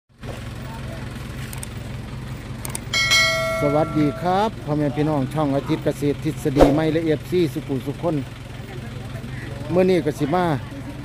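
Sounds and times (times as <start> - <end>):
bell-like chime: 3.0 - 4.4.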